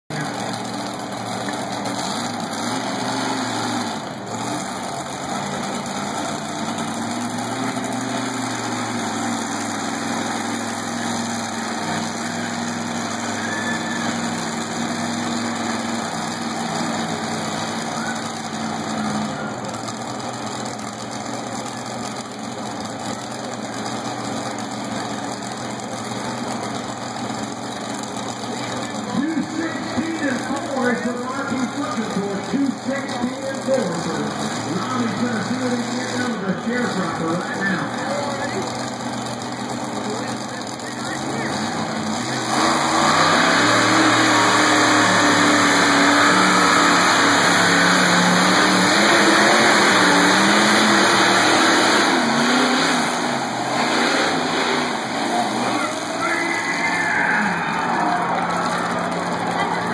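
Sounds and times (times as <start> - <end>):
crowd chatter: 0.1 - 59.9
garden tractor engine under load: 0.1 - 59.9.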